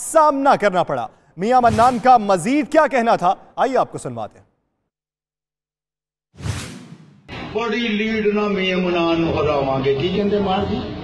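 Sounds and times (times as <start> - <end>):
whoosh transition effect: 6.4 - 7.4.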